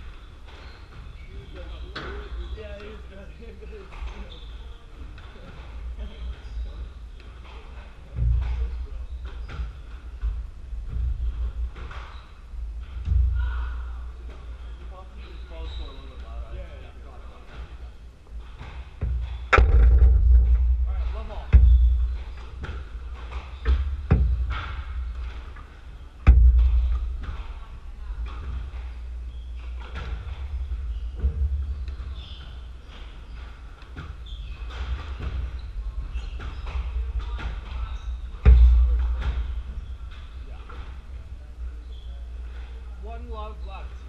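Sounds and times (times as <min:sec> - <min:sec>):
ball thuds echoing: 0:18.8 - 0:32.4, 0:36.6 - 0:41.0.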